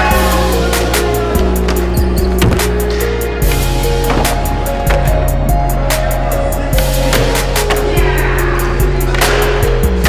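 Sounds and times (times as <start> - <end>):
electronic music with beat: 0.0 - 10.0.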